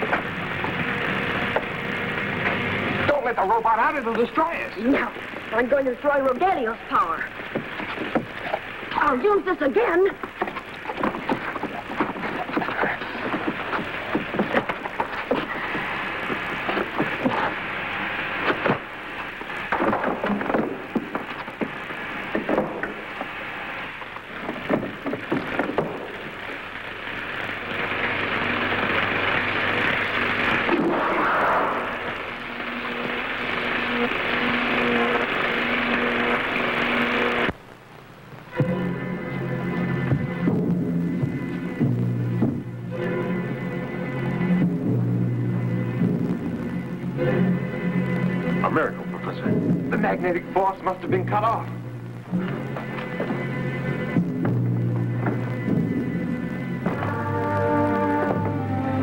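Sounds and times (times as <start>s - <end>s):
rushing crackling sound effect: 0.0s - 38.6s
steady low tones: 26.0s - 59.0s
film soundtrack music: 38.5s - 59.0s.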